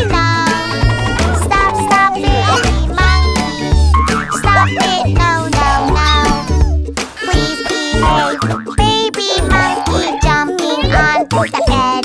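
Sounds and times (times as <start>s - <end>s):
children's cartoon music: 0.0s - 12.0s
springy gliding sound effects: 0.4s - 5.8s.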